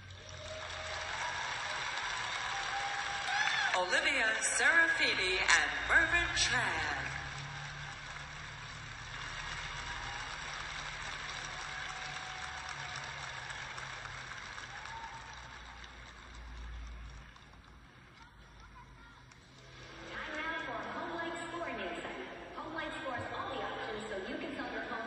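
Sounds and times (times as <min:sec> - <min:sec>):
crowd applauding: 0:00.0 - 0:22.2.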